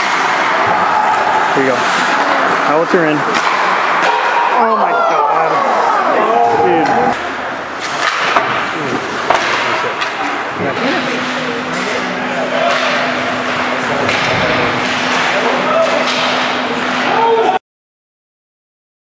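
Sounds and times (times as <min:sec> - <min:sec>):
spectators' voices: 0:00.0 - 0:17.6
steady low hum: 0:06.9 - 0:17.1
hockey sticks and puck knocking: 0:07.8 - 0:10.4.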